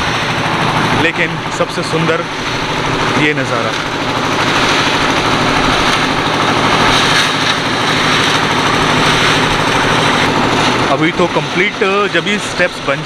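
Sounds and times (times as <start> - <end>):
concrete mixer engine running: 0.0 - 13.0.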